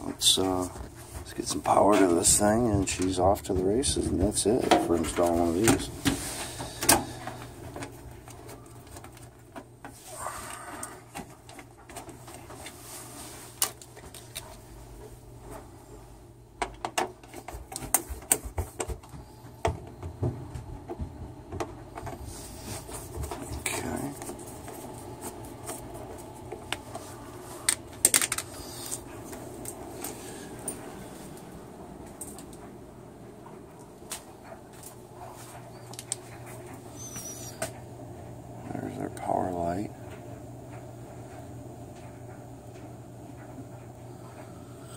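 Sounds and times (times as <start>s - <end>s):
steady low hum: 0.0s - 44.9s.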